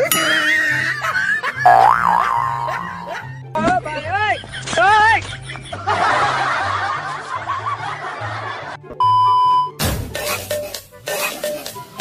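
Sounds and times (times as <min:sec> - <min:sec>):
wobbling comedy sound effects: 0:01.7 - 0:03.2.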